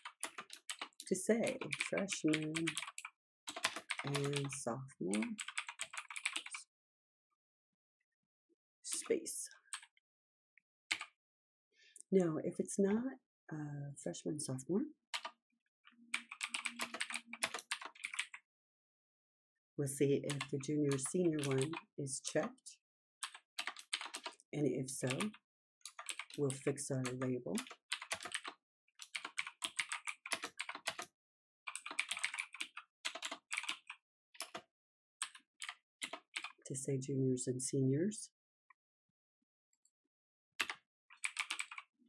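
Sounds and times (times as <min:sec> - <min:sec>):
typing on computer keyboard: 0:00.0 - 0:06.6, 0:10.9 - 0:11.1, 0:15.9 - 0:18.4, 0:20.3 - 0:21.9, 0:23.2 - 0:24.4, 0:25.1 - 0:31.1, 0:31.7 - 0:34.6, 0:35.2 - 0:36.6, 0:40.6 - 0:41.9.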